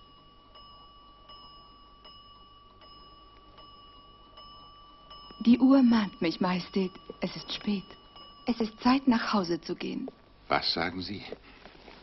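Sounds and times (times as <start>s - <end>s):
high ringing tone: 0.0s - 12.0s.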